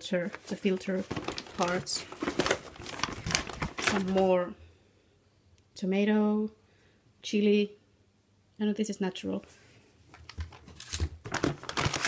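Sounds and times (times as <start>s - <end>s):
plastic bag crinkling: 0.0s - 4.4s, 10.2s - 12.0s.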